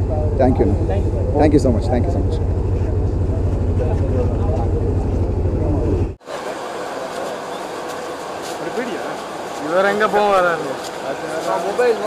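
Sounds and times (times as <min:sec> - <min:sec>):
low mechanical drone: 0:00.0 - 0:11.0
faint crowd voices: 0:00.0 - 0:12.0.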